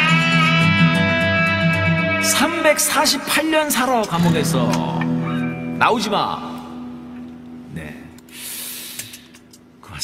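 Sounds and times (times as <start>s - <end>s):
guitar note ringing: 0.0s - 8.4s
breathy hiss: 8.3s - 9.4s.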